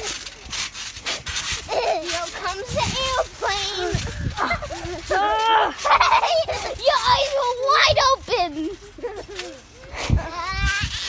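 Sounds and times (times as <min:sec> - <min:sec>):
children shrieking and laughing: 0:01.1 - 0:11.0.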